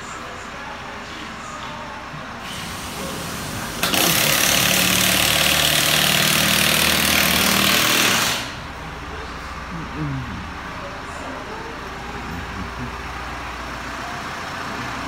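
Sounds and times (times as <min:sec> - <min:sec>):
power tool running: 0:02.5 - 0:08.6.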